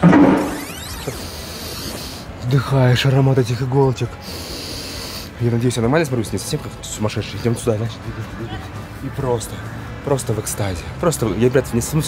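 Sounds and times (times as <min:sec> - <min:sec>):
transition whoosh: 0:00.0 - 0:01.1.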